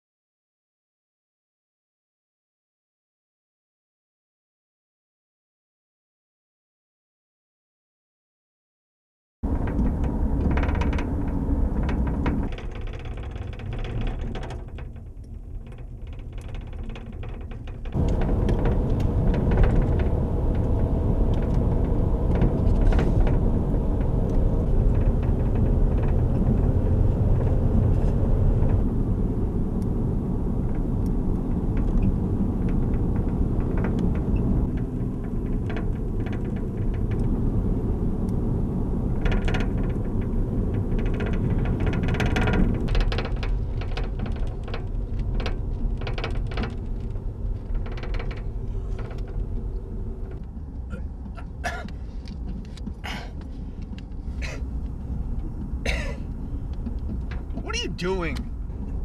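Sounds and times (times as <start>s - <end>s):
road and engine rumble in car: 9.4s - 59.0s.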